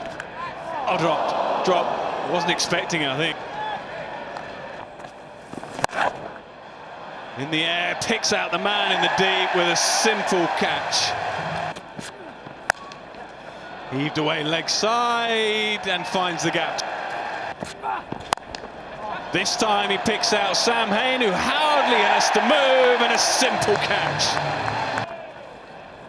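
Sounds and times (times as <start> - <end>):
stadium crowd noise: 0.0 - 26.0.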